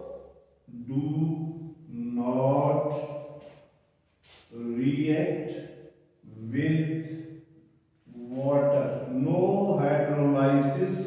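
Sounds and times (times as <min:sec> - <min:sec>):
man chanting long vowels: 0:00.7 - 0:03.0, 0:04.6 - 0:05.5, 0:08.1 - 0:11.0.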